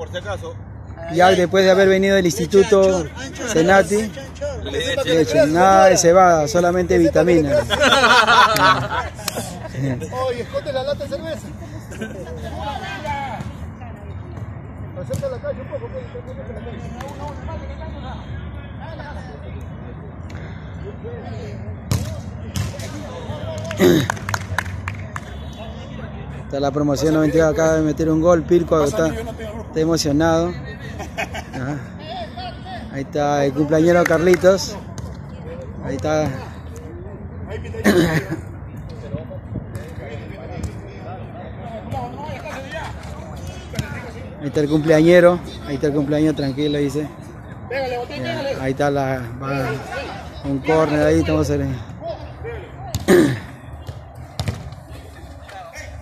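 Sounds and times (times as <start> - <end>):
ball being kicked: 21.9 - 22.8, 53.9 - 54.8.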